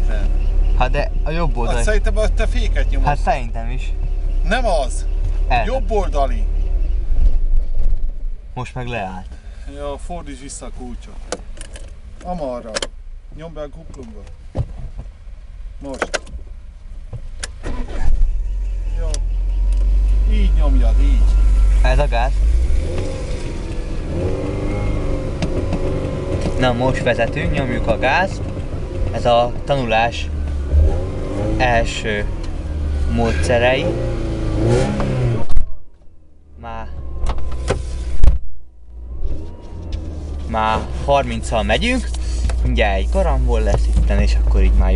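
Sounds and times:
car engine starting and idling: 0.0s - 44.9s.

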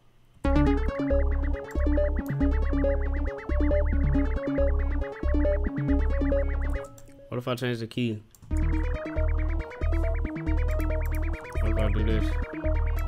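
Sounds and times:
deep bass notes: 0.5s - 6.9s, 8.5s - 13.0s
synth melody with high trill: 0.5s - 7.3s, 8.5s - 13.0s.

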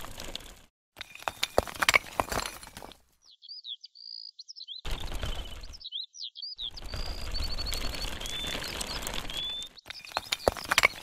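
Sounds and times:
toy bricks rustling on sand: 0.0s - 3.1s, 6.7s - 11.0s
small birds chirping: 2.8s - 11.0s.

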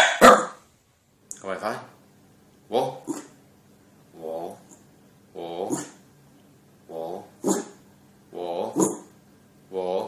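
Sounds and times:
dog barking: 0.0s - 0.6s, 7.4s - 7.8s, 8.8s - 9.1s.

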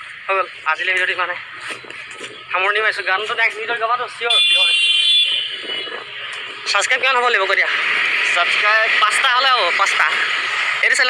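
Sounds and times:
high-pitched alarm tone: 4.3s - 6.8s.

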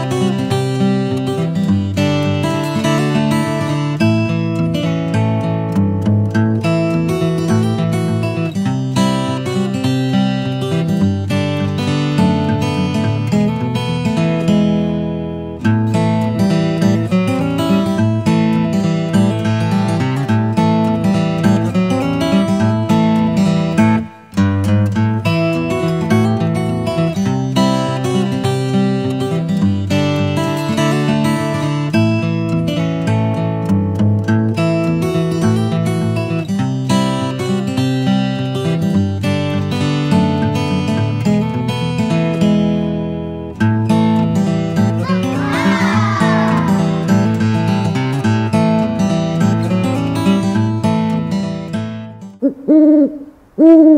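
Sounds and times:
strummed acoustic guitar music: 0.0s - 52.4s.

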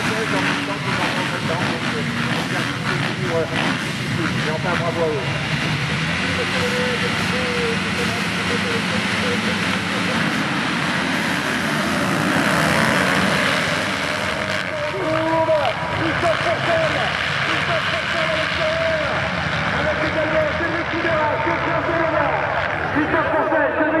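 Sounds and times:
motocross bikes revving: 0.0s - 24.0s.

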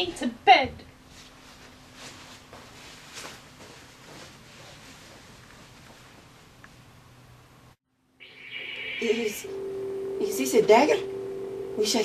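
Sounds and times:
low hum: 8.2s - 12.0s
steady high hiss: 8.2s - 12.0s.

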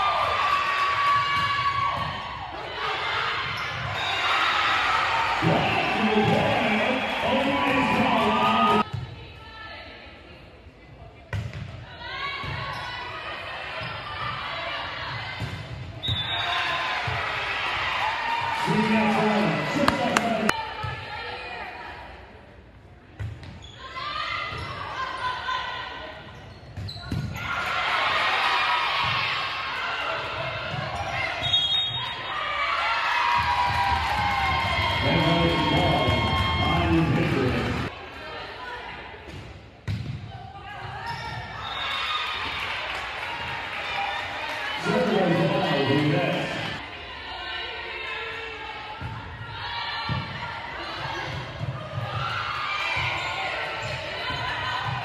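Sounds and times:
people shouting and cheering: 0.0s - 9.7s, 11.9s - 22.2s, 27.3s - 39.2s, 40.5s - 55.0s.

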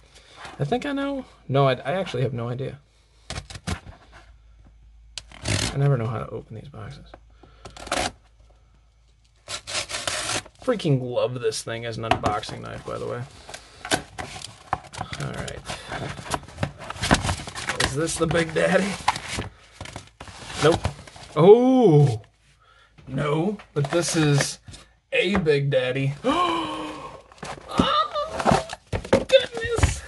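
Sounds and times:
cardboard rustle: 14.1s - 21.4s.

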